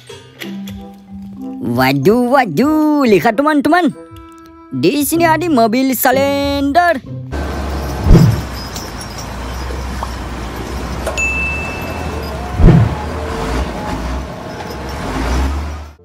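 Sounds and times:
road roller engine rumble: 7.3 - 16.0
brief high chime: 11.2 - 12.5.

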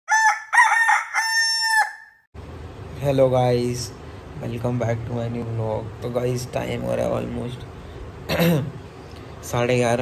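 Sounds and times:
rooster crowing: 0.1 - 2.3.

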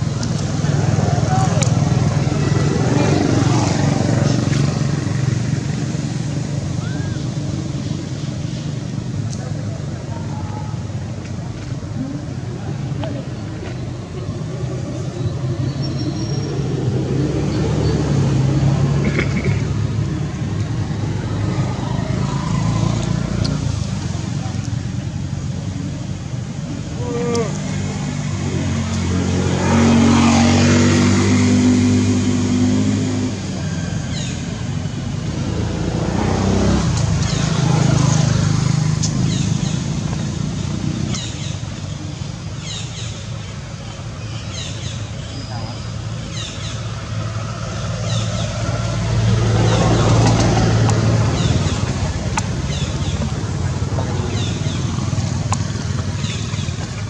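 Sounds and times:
motor vehicles passing: 0.0 - 57.0.

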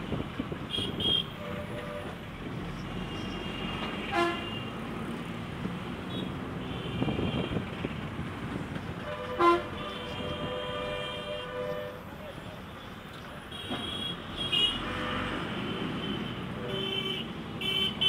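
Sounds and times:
street traffic rumble: 0.0 - 18.0
vehicle horn toots: 3.1 - 4.7, 9.0 - 12.0.

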